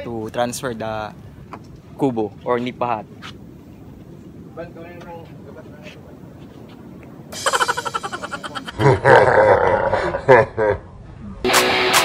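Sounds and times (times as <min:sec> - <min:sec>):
man laughing loudly: 0:07.4 - 0:10.9.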